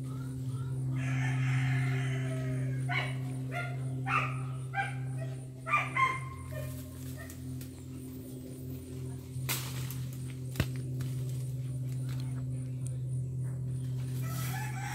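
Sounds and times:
steady low hum: 0.0s - 14.9s
dog barking: 2.9s - 7.4s.

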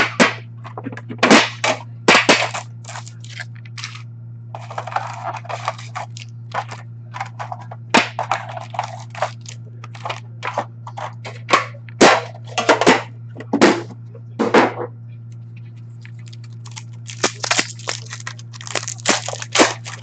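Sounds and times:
steady low hum: 0.0s - 20.0s
foil card packs crinkling: 1.2s - 4.0s, 4.6s - 11.5s, 16.0s - 20.0s.

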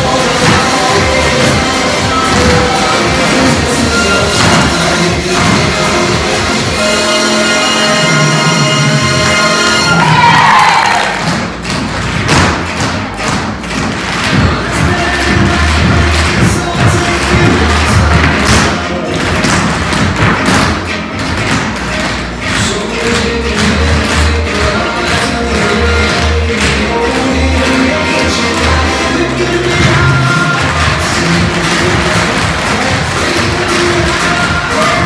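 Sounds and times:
backing music with pulsing bass: 0.0s - 35.0s.

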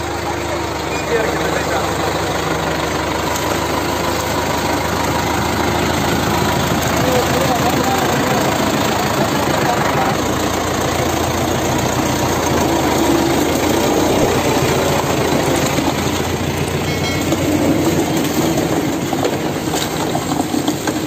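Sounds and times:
tractor diesel engine under load: 0.0s - 21.0s
trailer rattling: 0.0s - 21.0s.

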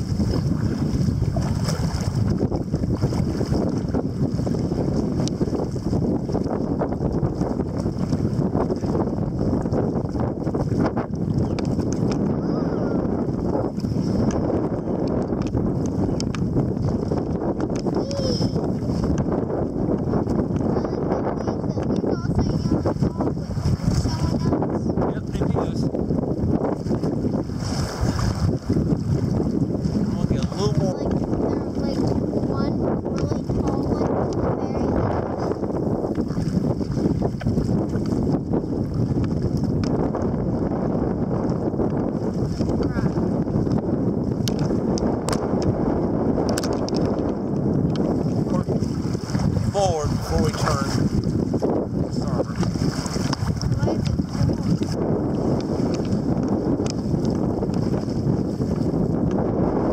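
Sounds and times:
water splashing against a hull: 0.0s - 59.9s
wind noise on microphone: 0.0s - 59.9s.

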